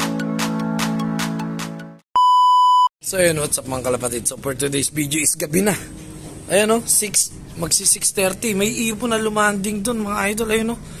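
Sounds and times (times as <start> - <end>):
loud electronic beep: 2.2 - 2.9.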